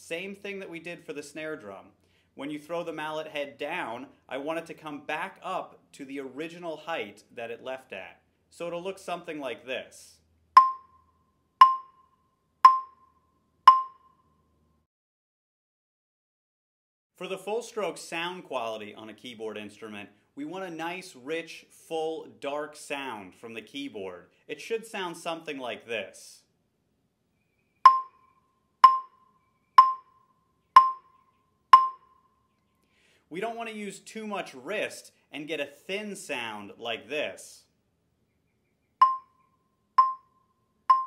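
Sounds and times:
mallet strokes on wooden bars: 0:10.6 - 0:10.8, 0:11.6 - 0:11.9, 0:12.7 - 0:13.0, 0:13.7 - 0:14.0, 0:27.9 - 0:28.1, 0:28.8 - 0:29.1, 0:29.8 - 0:30.0, 0:30.8 - 0:31.0, 0:31.8 - 0:32.0.

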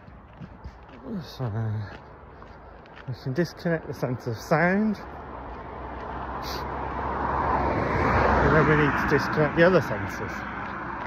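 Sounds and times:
vehicle engine and tyre noise: 0:00.0 - 0:11.0.

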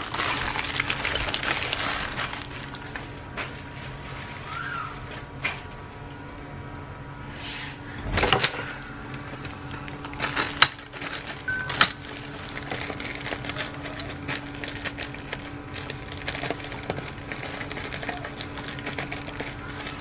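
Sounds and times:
plastic mailer bag crinkling: 0:00.0 - 0:04.4, 0:09.4 - 0:20.0.

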